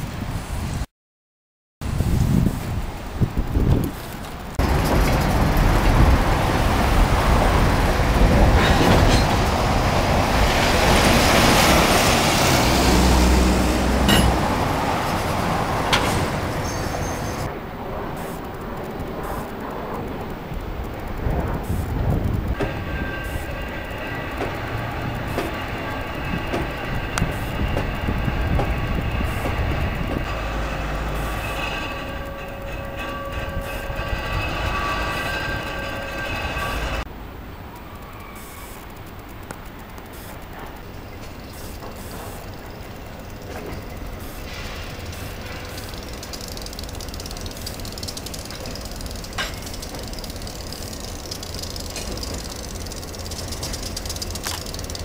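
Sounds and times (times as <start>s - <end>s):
diesel locomotive engine running: 1.8s - 55.0s
train cars rolling over bridge: 1.8s - 55.0s
high-pitched wheel squeal: 16.5s - 17.5s, 22.6s - 37.0s, 37.9s - 38.8s.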